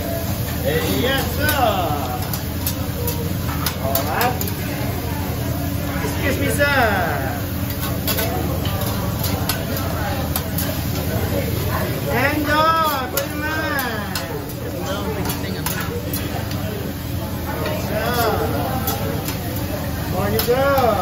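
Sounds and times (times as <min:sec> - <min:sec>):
food sizzling: 0:00.0 - 0:21.0
spatulas scraping metal griddle: 0:07.7 - 0:16.5.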